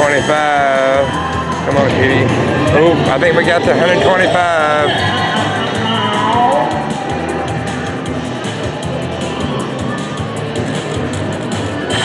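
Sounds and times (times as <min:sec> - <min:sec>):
slot machine music: 0:00.0 - 0:12.0.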